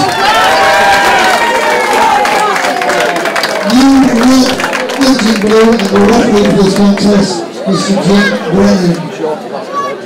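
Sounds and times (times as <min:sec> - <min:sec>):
crowd cheering and clapping: 0:00.0 - 0:07.3.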